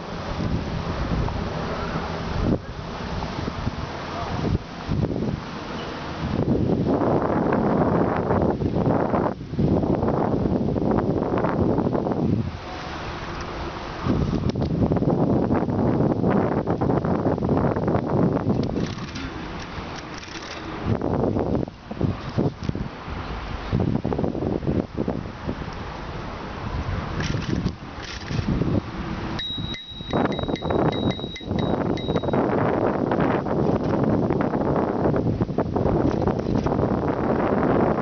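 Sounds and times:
wind buffeting microphone: 0.0s - 38.0s
thin high tone: 29.4s - 32.5s.

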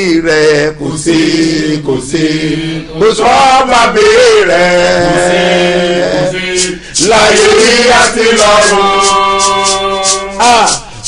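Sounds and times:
man chanting wordless melody: 8.7s - 11.0s.

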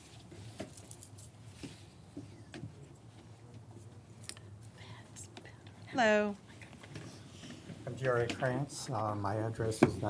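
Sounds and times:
faint whispering: 4.6s - 5.7s.

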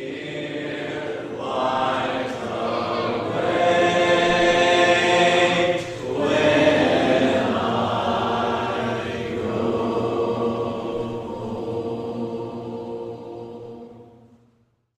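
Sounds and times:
congregation singing a hymn: 0.0s - 14.5s.

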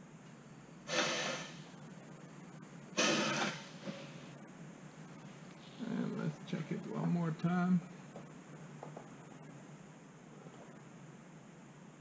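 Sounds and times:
pneumatic rivet squeezer hiss: 0.9s - 1.6s, 3.0s - 4.0s.

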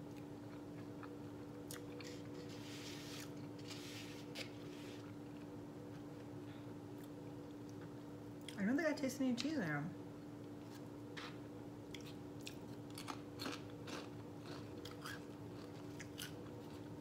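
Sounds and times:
steady low hum: 0.0s - 17.0s
person chewing food: 0.1s - 5.6s, 10.7s - 17.0s.

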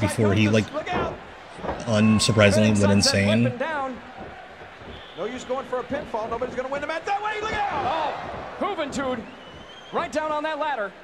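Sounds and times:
commentator speaking: 0.0s - 1.1s, 1.8s - 3.7s
arena crowd noise: 0.0s - 11.0s.

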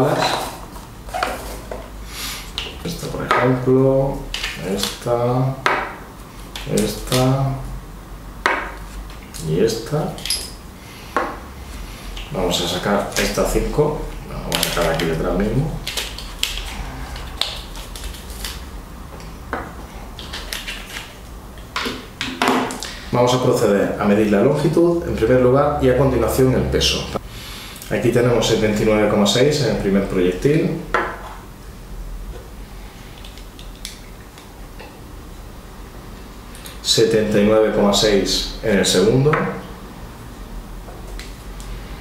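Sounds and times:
low steady hum: 0.0s - 42.0s.

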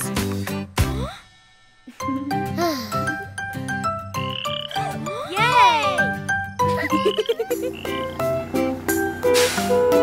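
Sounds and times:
bouncy plucked instrumental tune: 1.9s - 10.0s
cartoon frog croaking: 4.2s - 5.0s, 6.9s - 8.2s.

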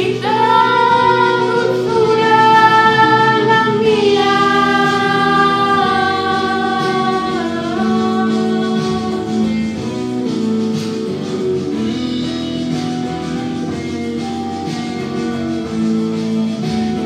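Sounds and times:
person singing long notes: 0.0s - 9.8s
music: 0.0s - 17.0s.

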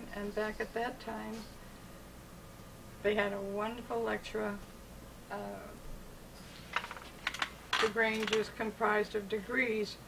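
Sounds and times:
woman speaking: 0.0s - 1.6s, 3.0s - 4.7s, 5.3s - 5.8s, 7.8s - 10.0s.

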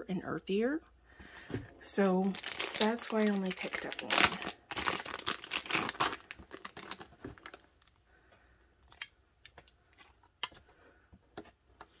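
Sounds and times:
plastic wrap crinkling: 1.7s - 8.0s.

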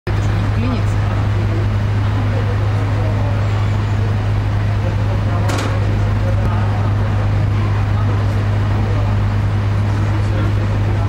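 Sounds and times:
boat engine idling: 0.1s - 11.0s
faint voices chattering: 0.1s - 11.0s.

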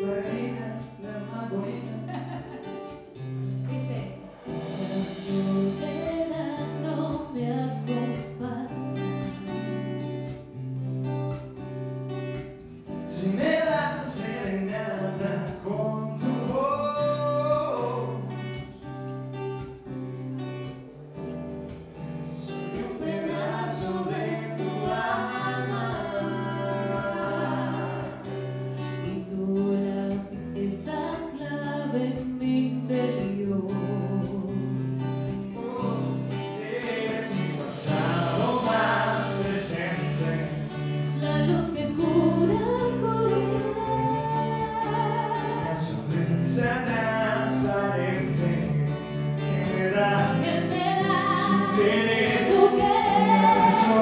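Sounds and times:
acoustic guitar: 0.0s - 54.0s
bass: 0.0s - 54.0s
drums: 0.0s - 54.0s
woman singing a ballad: 3.6s - 9.4s, 22.3s - 34.8s, 37.9s - 46.2s, 50.2s - 54.0s.

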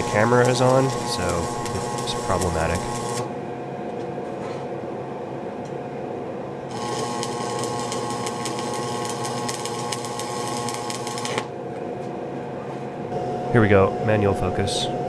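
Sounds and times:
electric welding arc crackling: 0.0s - 3.3s, 6.7s - 11.5s
steady hum: 0.0s - 15.0s.

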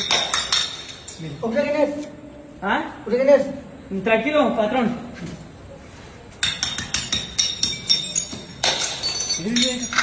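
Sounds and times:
glass bottles clinking and breaking: 0.0s - 1.4s, 6.4s - 10.0s.

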